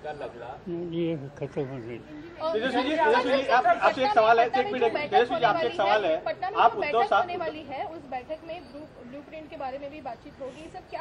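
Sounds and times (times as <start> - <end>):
people talking over each other: 0.0 - 11.0.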